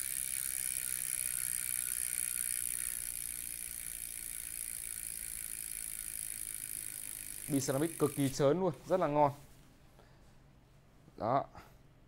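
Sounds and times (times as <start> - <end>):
bicycle freehub buzzing: 0.0 - 8.5.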